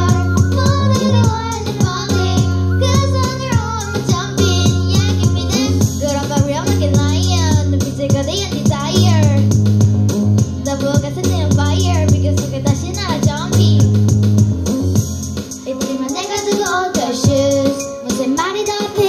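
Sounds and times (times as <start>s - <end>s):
girls singing into microphones: 0.0s - 7.0s
dance backing track: 0.0s - 19.0s.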